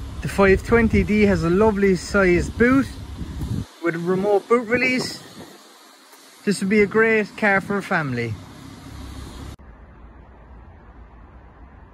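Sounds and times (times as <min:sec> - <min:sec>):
dull rumble: 0:00.0 - 0:10.0
low rumble with hiss: 0:00.0 - 0:11.9.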